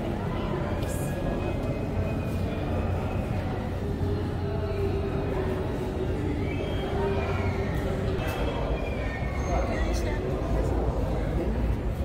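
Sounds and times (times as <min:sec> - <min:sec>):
constant hum: 0:00.0 - 0:12.0.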